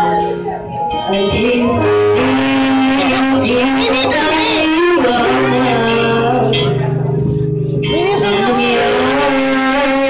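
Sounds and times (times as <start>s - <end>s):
girl singing into a microphone: 1.0s - 10.0s.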